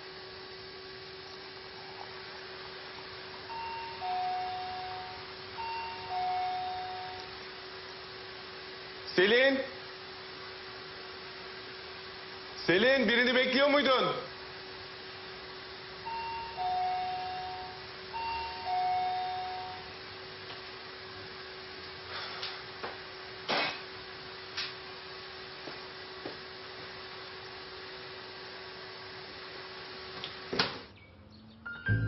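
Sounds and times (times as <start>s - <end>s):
two-tone doorbell chime: 3.5s - 7.3s, 16.1s - 20.0s, 31.7s - 32.0s.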